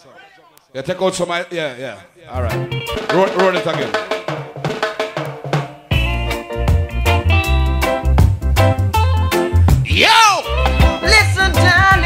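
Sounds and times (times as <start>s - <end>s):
reggae band with heavy bass: 2.3s - 12.0s.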